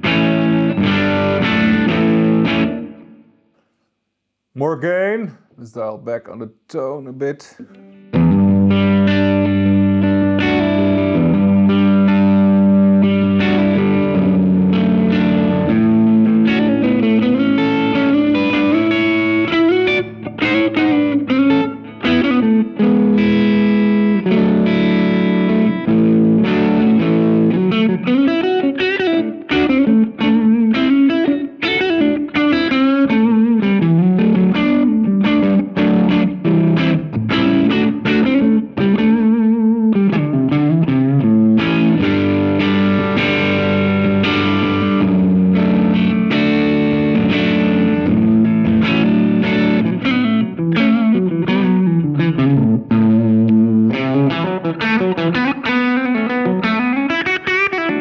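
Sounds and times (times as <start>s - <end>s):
overdriven electric guitar: 0.0s - 3.8s, 7.6s - 58.0s.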